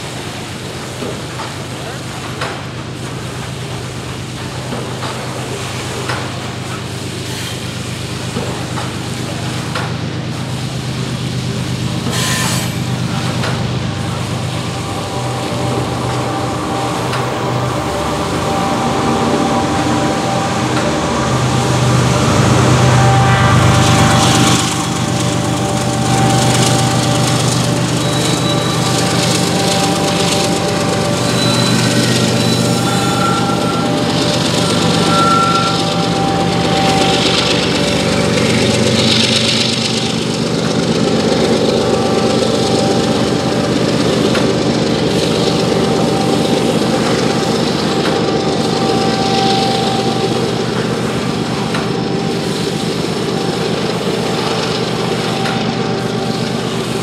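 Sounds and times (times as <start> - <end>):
diesel locomotive drone: 0.0 - 57.0
hopper cars clattering over rails: 0.0 - 57.0
high wheel squeals: 11.5 - 57.0.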